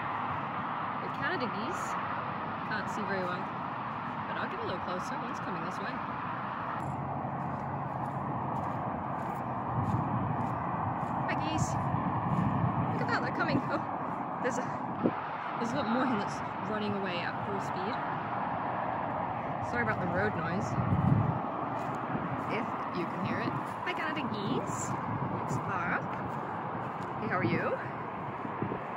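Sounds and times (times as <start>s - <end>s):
steady background rush: 0.0s - 28.9s.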